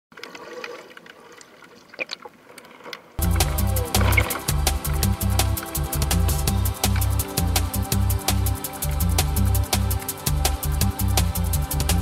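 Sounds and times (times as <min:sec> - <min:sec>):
small clicks and ticks: 0:00.1 - 0:03.1
water trickling and bubbling: 0:00.1 - 0:06.0.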